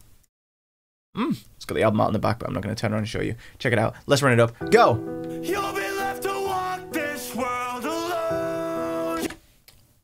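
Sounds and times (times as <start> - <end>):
sustained chords: 4.6 - 9.2
person singing long held notes: 5.2 - 9.4.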